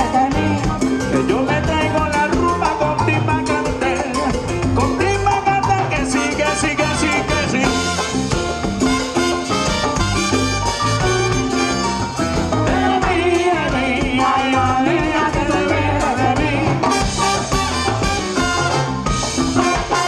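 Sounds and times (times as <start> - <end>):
salsa band over loudspeakers: 0.0 - 20.0.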